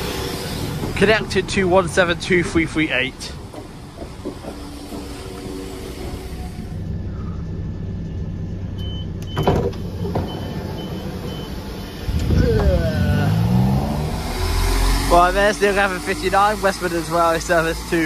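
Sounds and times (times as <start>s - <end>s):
train diesel engine running: 0.0s - 18.0s.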